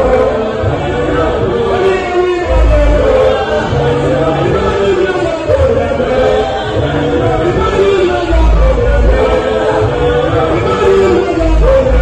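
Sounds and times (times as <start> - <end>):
choir singing in harmony: 0.0 - 12.0.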